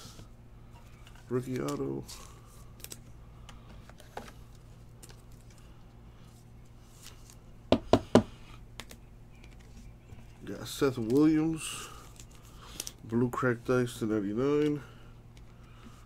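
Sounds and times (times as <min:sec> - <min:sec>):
card handling clicks and rustling: 0:00.9 - 0:05.7, 0:08.8 - 0:13.0.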